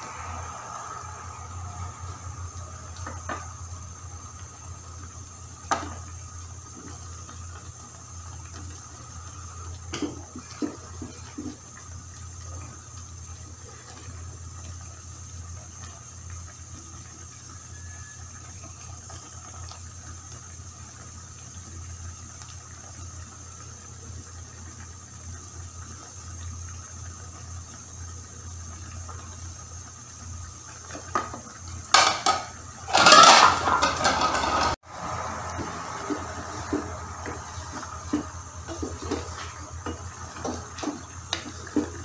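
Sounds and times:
faint hiss: 0.0 - 6.8.

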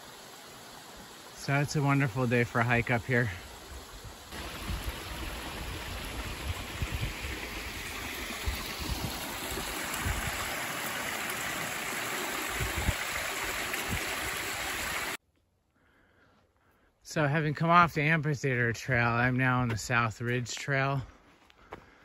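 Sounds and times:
stream running over rocks: 0.0 - 15.2.

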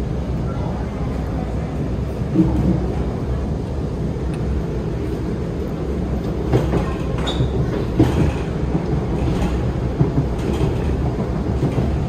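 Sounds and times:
metro train wheels rumbling: 0.0 - 12.0.

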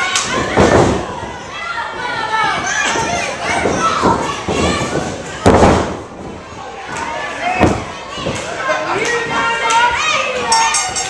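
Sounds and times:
body slamming onto ring canvas: 3.6 - 6.0.

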